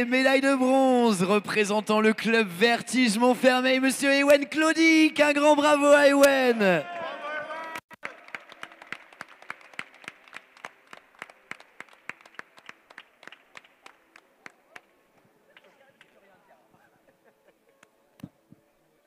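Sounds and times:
audience applauding: 0:07.6 - 0:15.0.

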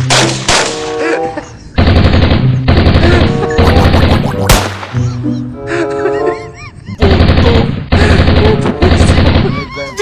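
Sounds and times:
machine-gun fire: 0:01.8 - 0:05.0, 0:07.0 - 0:09.5.

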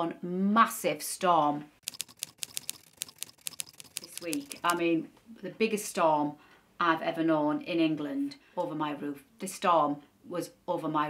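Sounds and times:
soft high clicks: 0:01.8 - 0:04.8.

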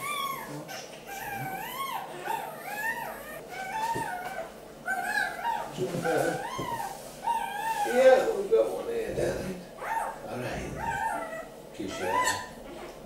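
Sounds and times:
puppy squealing: 0:00.0 - 0:08.4, 0:09.8 - 0:13.0.

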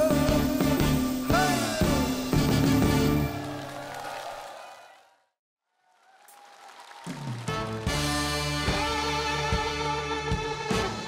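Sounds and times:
crowd applause: 0:03.0 - 0:08.3.

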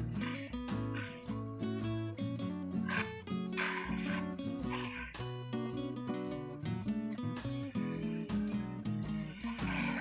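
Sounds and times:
acoustic guitar music: 0:00.0 - 0:10.0
rough creature cries: 0:00.2 - 0:01.4, 0:02.8 - 0:05.2, 0:09.4 - 0:10.0.

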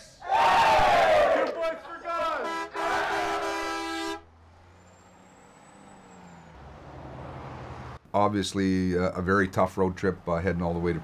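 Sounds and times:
bus engine humming: 0:01.7 - 0:11.0
vehicle horn chord: 0:02.4 - 0:04.3.

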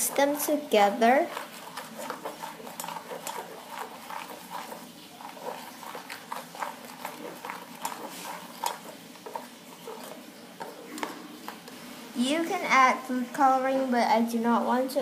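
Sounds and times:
spatula stirring foaming mixture: 0:00.0 - 0:15.0.

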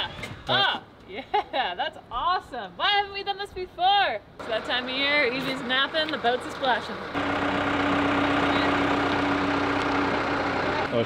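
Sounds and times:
diesel engine running: 0:04.4 - 0:11.0.

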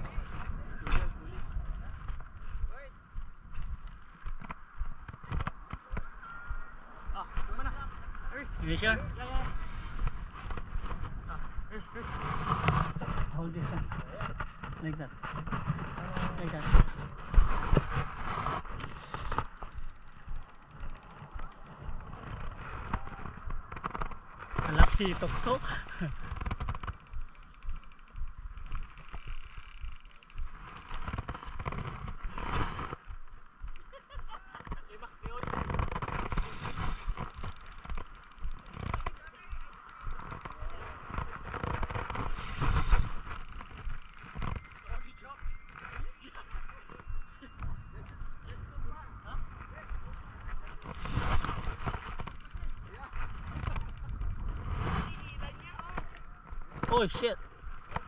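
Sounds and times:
voices talking: 0:05.4 - 0:12.2, 0:18.9 - 0:29.1, 0:34.0 - 0:54.3, 0:55.0 - 0:57.6.

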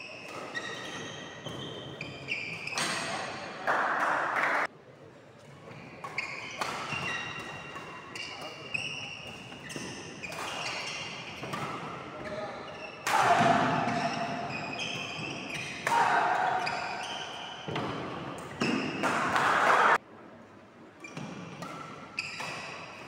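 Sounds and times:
shoe squeaks on wooden court: 0:00.0 - 0:03.4, 0:05.7 - 0:19.1, 0:21.0 - 0:23.0
racket hitting shuttlecock: 0:06.0 - 0:12.0, 0:12.8 - 0:20.0, 0:21.1 - 0:23.0
loud voices: 0:13.0 - 0:14.2, 0:15.8 - 0:17.1.

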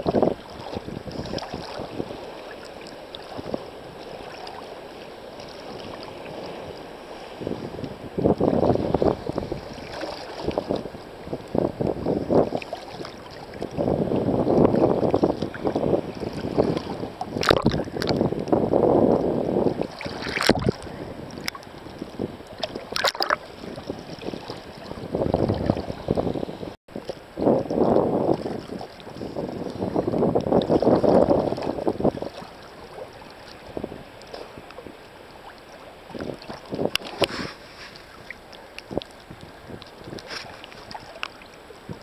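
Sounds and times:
sea water sloshing and splashing: 0:00.0 - 0:42.0.

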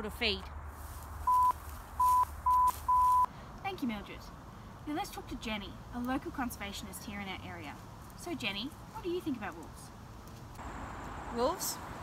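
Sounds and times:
short electronic bleeps: 0:01.3 - 0:03.3.

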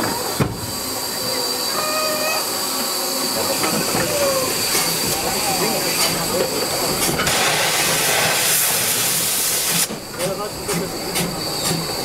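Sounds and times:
steam hissing: 0:00.0 - 0:12.0.

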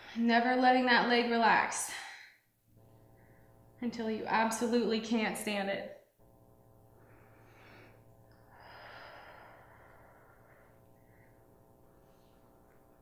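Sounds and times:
steady low hum: 0:00.0 - 0:13.0
woman breathing faintly: 0:06.9 - 0:13.0.

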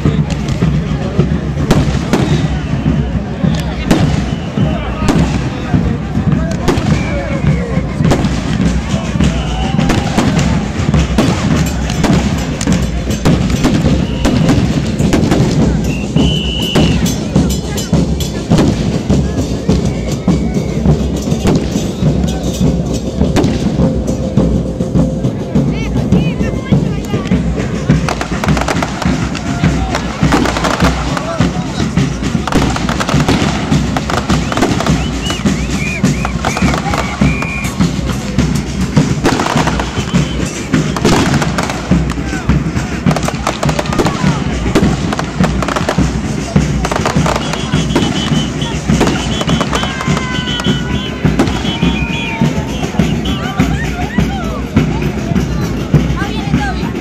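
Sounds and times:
fireworks bangs: 0:00.0 - 0:20.0, 0:20.8 - 0:24.7, 0:25.8 - 0:54.2.

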